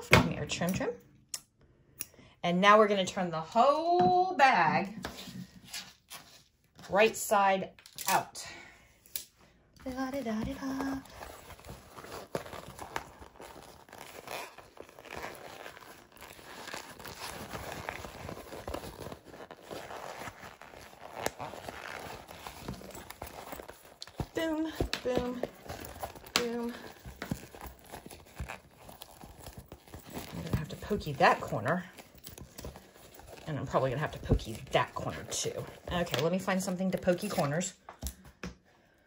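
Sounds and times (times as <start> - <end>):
vinyl bag crinkling: 9.8 - 37.7.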